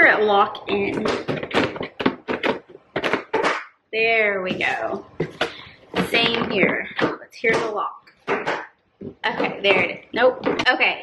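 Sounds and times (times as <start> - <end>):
plastic boxes knocking together: 0.7 - 3.7, 4.5 - 10.7.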